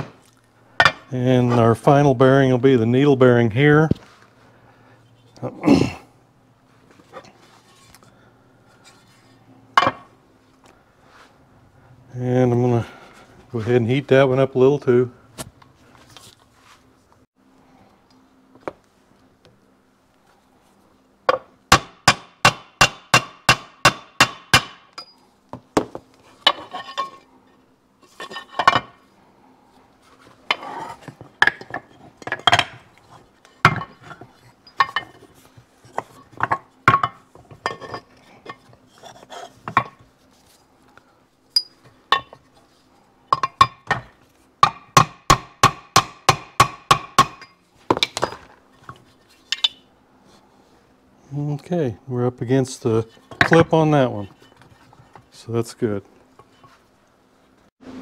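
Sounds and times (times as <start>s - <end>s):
knocks and clinks of handling: 30.4s - 40.1s, 41.5s - 42.6s, 47.3s - 49.9s
hammer tapping metal: 43.4s - 47.6s.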